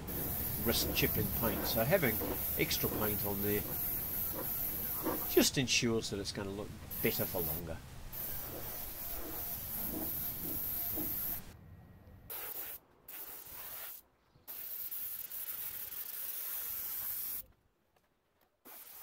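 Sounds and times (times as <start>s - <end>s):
paint spray gun hissing: 0.0s - 5.4s, 6.9s - 11.5s, 12.3s - 17.4s, 18.7s - 19.0s.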